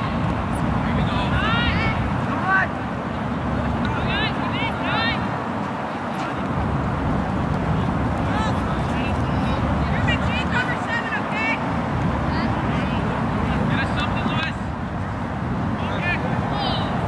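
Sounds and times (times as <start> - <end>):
people shouting and calling: 0.9 - 2.8.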